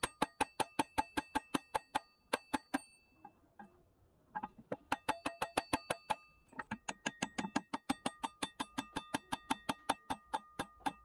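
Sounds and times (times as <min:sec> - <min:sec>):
rapid hammer taps on ringing metal: 0:00.0 - 0:03.4, 0:04.7 - 0:11.0.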